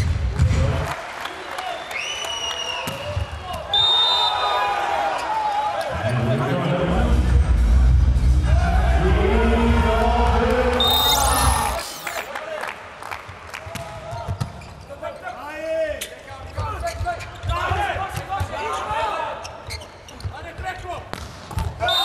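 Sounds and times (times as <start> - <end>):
players and crowd shouting: 10.6 - 12.3
shoe squeaks on court floor: 10.8 - 12.3, 18.7 - 20.4.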